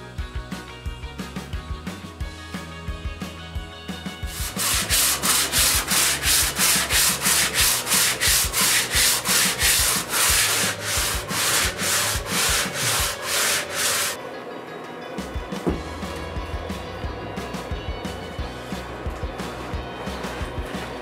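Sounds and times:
background music: 0.0 - 21.0
sanding block rubbing board: 4.3 - 14.2.

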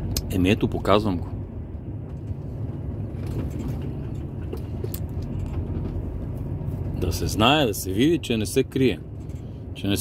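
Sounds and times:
road noise: 0.0 - 10.0
truck engine drone: 0.0 - 10.0.

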